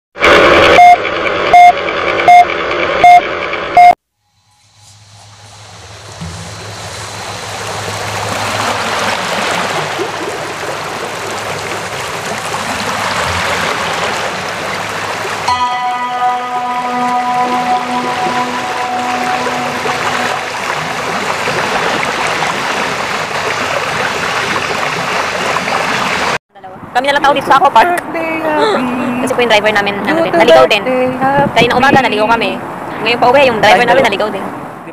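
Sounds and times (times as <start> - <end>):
rushing water-like sound: 4.2 - 26.4
background music: 12.6 - 21.4.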